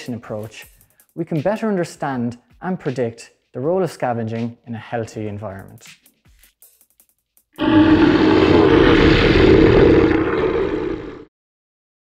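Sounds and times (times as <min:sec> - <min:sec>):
dinosaur roar: 0:07.6 - 0:11.3.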